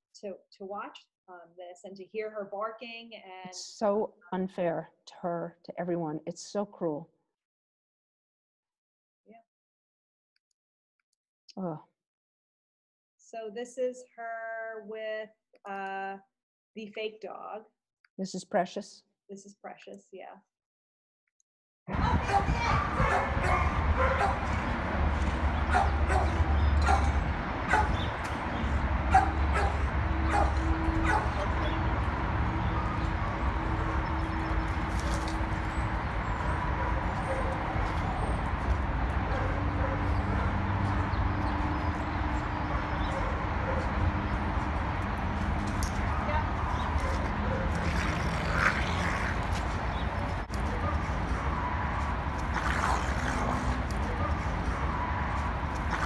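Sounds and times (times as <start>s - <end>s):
dog barking: 22.1s - 24.6s, 25.7s - 28.1s, 29.1s - 31.9s, 36.7s - 38.0s, 39.2s - 40.7s, 42.6s - 44.0s, 46.0s - 47.8s, 50.6s - 56.0s.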